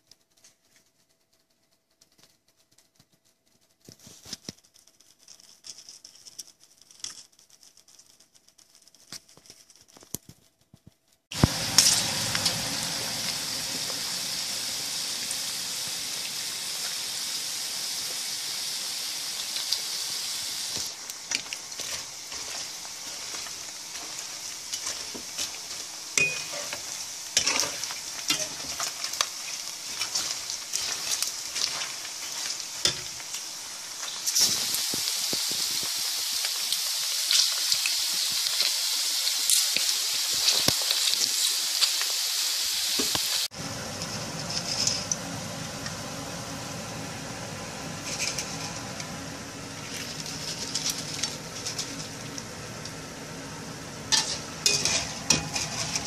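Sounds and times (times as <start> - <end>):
deep-frying sizzle in hot oil: 6.9 - 56.0
utensil stirring in pan: 11.3 - 46.3, 47.3 - 56.0.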